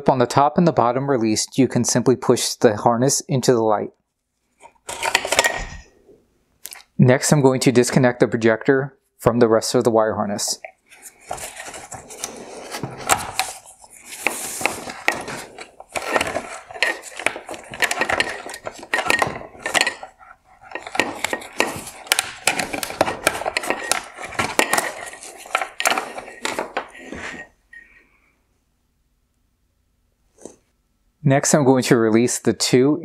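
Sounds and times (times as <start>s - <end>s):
wires rustling: 10.6s - 27.8s.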